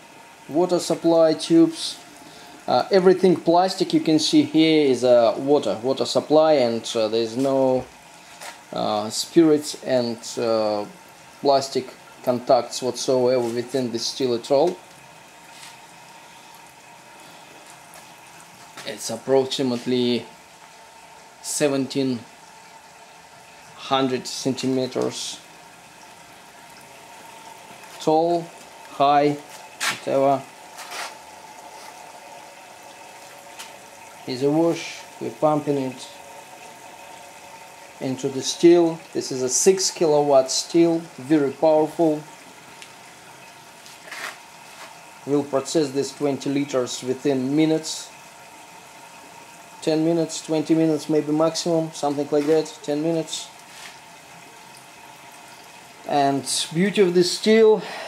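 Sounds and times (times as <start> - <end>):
still boiling: 0.0 - 58.0.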